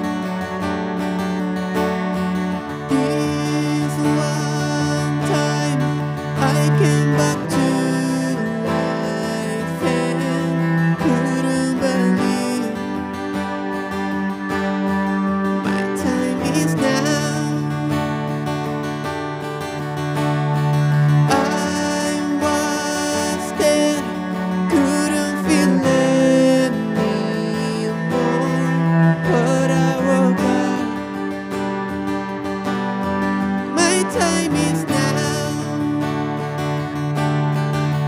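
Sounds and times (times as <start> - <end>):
acoustic guitars strummed: 0.0 - 38.0
bowed low string instrument: 0.0 - 38.0
man singing: 2.6 - 13.6, 15.6 - 18.7, 21.2 - 31.5, 33.6 - 36.4.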